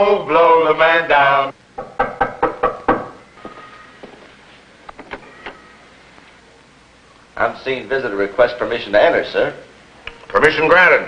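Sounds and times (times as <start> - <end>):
knuckles knocking on wooden door: 1.8 - 3.2.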